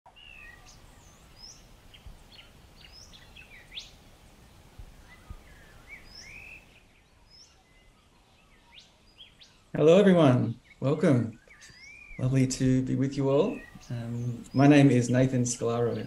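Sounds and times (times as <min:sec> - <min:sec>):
birds chirping and calling: 0:00.1 - 0:16.0
low background noise: 0:00.1 - 0:16.0.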